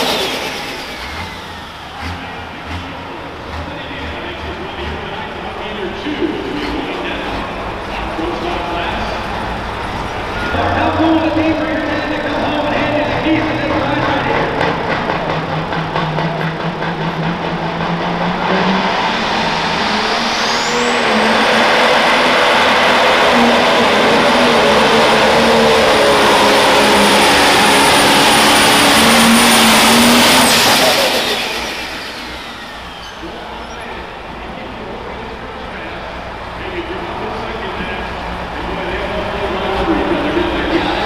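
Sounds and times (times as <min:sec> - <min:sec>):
diesel engine at full power: 0:00.0 - 0:41.0
high turbo whine: 0:00.0 - 0:41.0.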